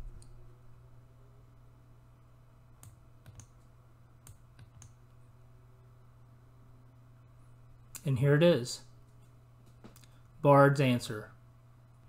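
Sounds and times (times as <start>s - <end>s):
low hum: 0.0s - 10.4s
computer mouse clicks: 2.8s - 5.0s.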